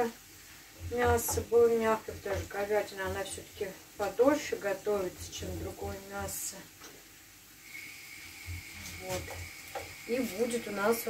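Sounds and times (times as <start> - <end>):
onions sizzling in oil: 0.0 - 11.0
faint high whine: 7.6 - 11.0.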